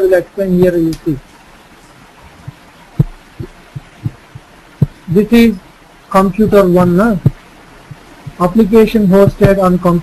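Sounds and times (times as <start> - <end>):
faint steady hiss: 0.0 - 10.0
dull low thumps: 2.2 - 5.2, 6.2 - 8.6.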